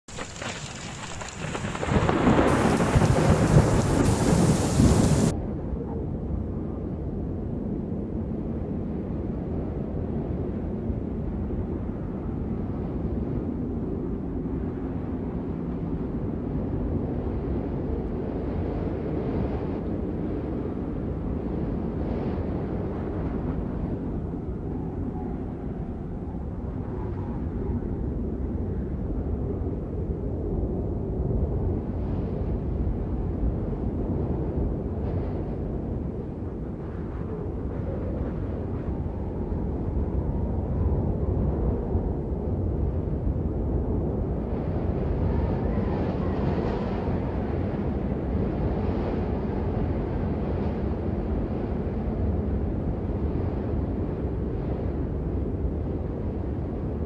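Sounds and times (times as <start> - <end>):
deep rumbling noise: 0.1 - 5.6.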